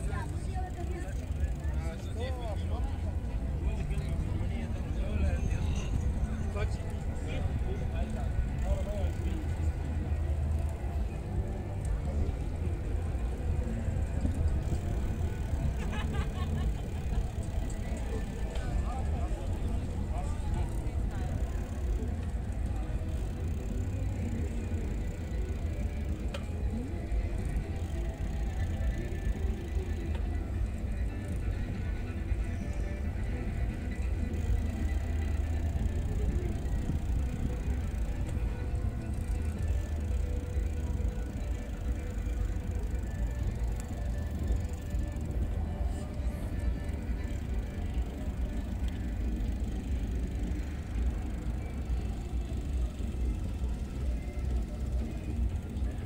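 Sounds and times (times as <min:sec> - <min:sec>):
bicycle tyres rolling on asphalt: 0:00.0 - 0:56.0
faint music: 0:00.0 - 0:56.0.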